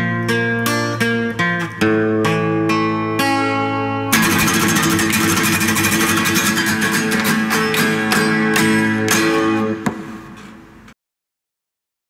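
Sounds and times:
acoustic guitar strummed hard: 0.0 - 10.4.

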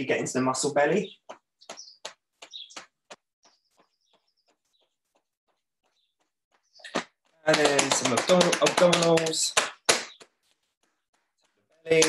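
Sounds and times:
hands tapping through clothing: 1.2 - 12.0.

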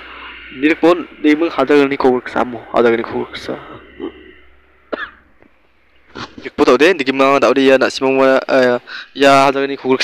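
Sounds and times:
person coughing: 4.9 - 5.2.

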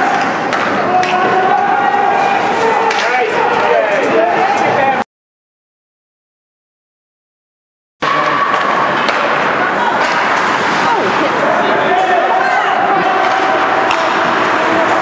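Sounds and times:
ice hockey play noise: 0.0 - 5.0, 8.0 - 15.0
spectators shouting: 0.0 - 5.0, 8.0 - 15.0.

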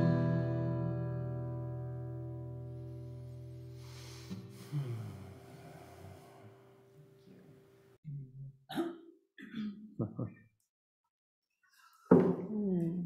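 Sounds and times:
acoustic guitar chord ringing: 0.0 - 5.6
short wordless vocal sounds: 4.2 - 8.9.

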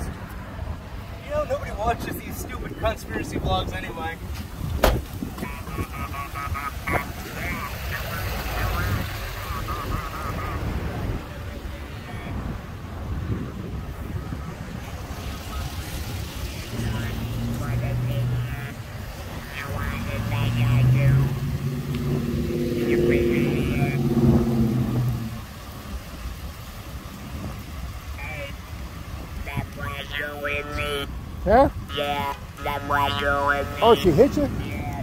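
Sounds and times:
car engine revving: 4.9 - 11.4, 15.0 - 25.8.

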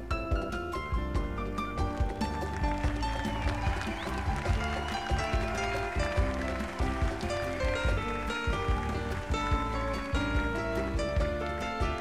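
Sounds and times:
keyboard chords: 0.0 - 12.0
pitch-bending lead line: 2.1 - 12.0
steady drum beat: 2.2 - 12.0.

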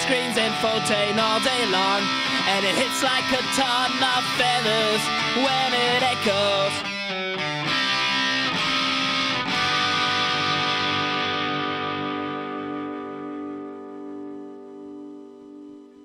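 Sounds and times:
electric guitar chord strums: 0.0 - 16.0.

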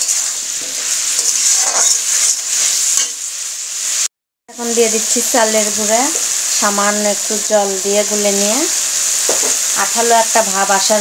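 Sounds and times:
vegetables sizzling in a pan: 0.0 - 11.0
steel spatula scraping: 0.8 - 3.2.

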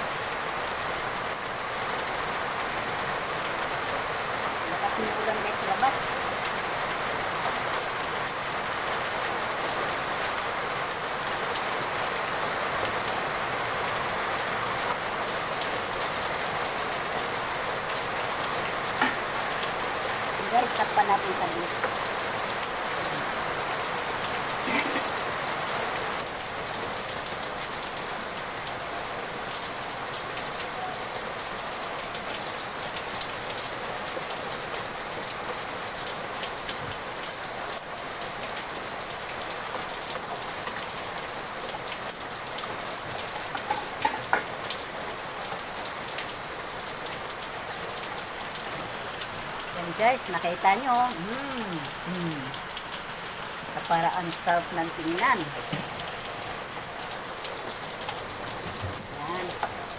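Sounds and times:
steady rain falling: 0.0 - 59.9.

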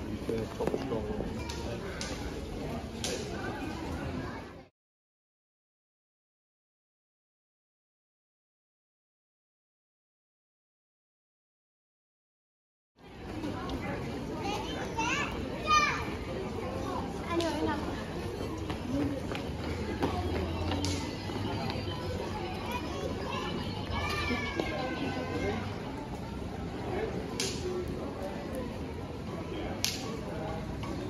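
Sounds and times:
busy pedestrian street noise: 0.0 - 4.7, 13.0 - 31.0.

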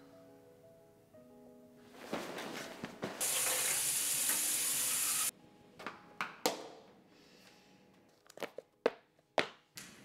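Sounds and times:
tap water running: 3.2 - 5.3.

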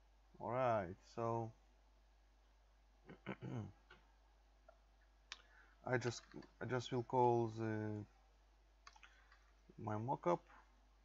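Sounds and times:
man talking: 0.4 - 1.5, 3.1 - 3.7, 5.8 - 8.1, 9.8 - 10.5.

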